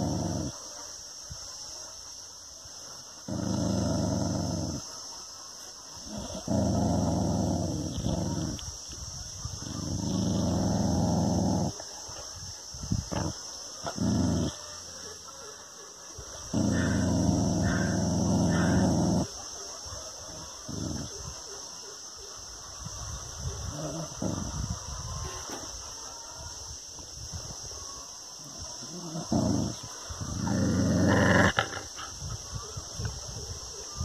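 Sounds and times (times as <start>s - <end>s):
dog growling: 0.0s - 0.6s, 3.2s - 5.0s, 6.0s - 8.7s, 9.6s - 11.8s, 13.1s - 14.7s, 16.4s - 19.4s, 20.3s - 21.2s, 23.6s - 24.8s, 28.8s - 32.3s.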